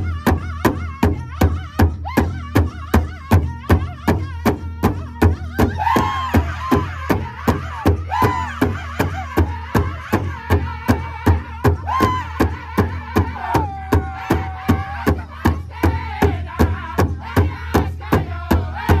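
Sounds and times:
group singing: 5.6 - 19.0.

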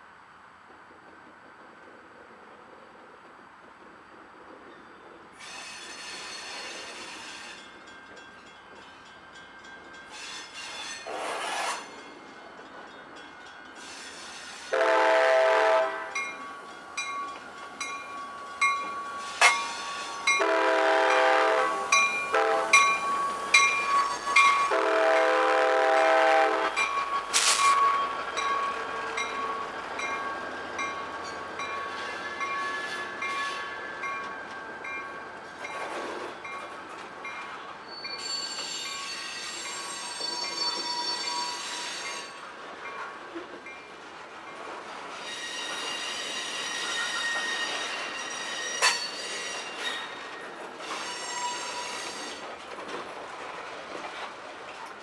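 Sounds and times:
freight train rolling past: 0.0 - 55.0
wheel squeal on rails: 5.4 - 7.8, 10.1 - 12.1, 13.8 - 14.8, 17.8 - 25.0, 26.3 - 36.6, 37.8 - 42.5, 45.0 - 52.6
locomotive horn blasts: 14.7 - 16.2, 20.3 - 22.9, 24.6 - 26.8
wheels clicking over rail joints: 16.1 - 25.2, 26.6 - 55.0.

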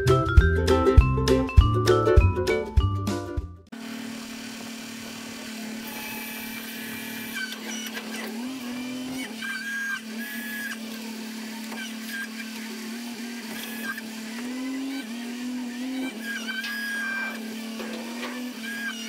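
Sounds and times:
grapple loader engine humming: 3.8 - 19.0.

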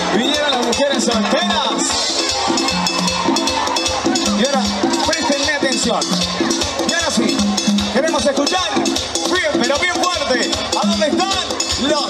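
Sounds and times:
band playing loudly: 0.0 - 12.0
bouncing bass line: 0.0 - 12.0
steady percussion: 0.0 - 12.0.

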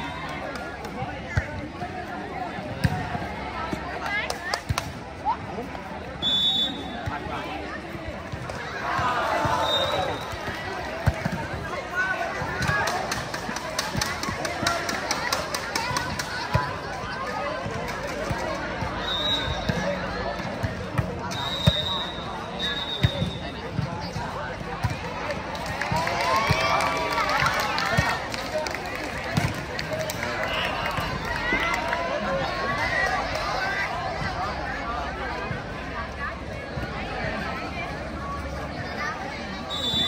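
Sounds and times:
people chattering and shouting: 0.0 - 40.0.

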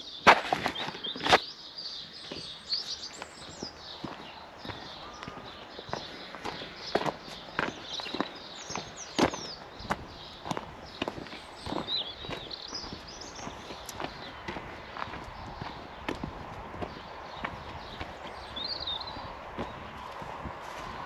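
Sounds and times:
small birds chirping: 0.0 - 21.0
footsteps: 3.2 - 21.0.

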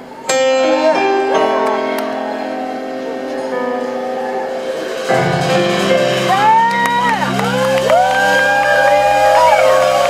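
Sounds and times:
band's sustained chord: 0.0 - 10.0
audience whooping and cheering: 1.0 - 10.0
loud shouts: 6.3 - 10.0.

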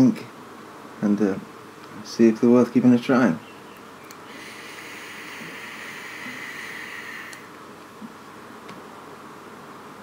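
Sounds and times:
e-cigarette click: 4.0 - 7.5
e-cigarette draw hiss: 4.2 - 7.6.

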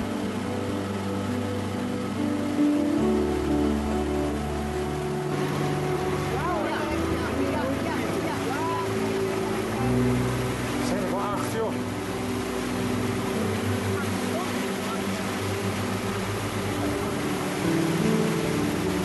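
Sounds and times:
outboard motor running: 0.0 - 19.0
water rushing: 0.0 - 19.0.

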